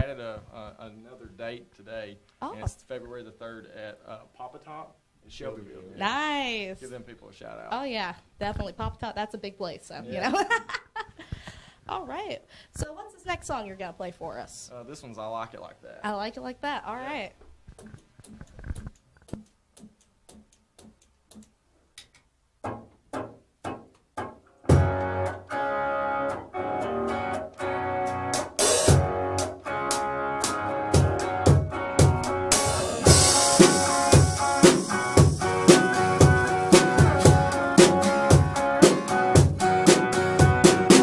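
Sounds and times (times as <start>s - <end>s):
quiet clicks: 17.4s - 22.3s
drum kit steady beat: 22.6s - 25.4s, 28.0s - 41.0s
guitars strumming chords: 22.7s - 41.0s
cymbals: 28.4s - 41.0s.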